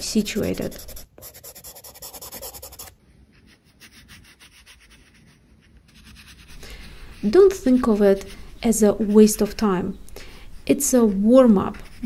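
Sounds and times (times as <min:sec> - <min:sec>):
pencil scratching on paper: 0:00.0 - 0:09.7, 0:10.6 - 0:12.0.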